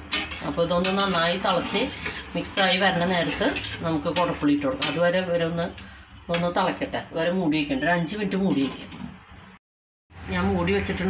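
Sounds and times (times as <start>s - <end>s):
metal spatula scraping pot: 0.0s - 9.5s
woman talking: 0.4s - 9.0s, 10.2s - 11.0s.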